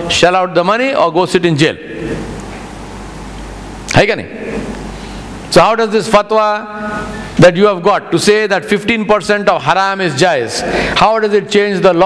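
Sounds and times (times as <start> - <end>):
background hiss: 0.0 - 12.0
man's voice: 5.5 - 12.0.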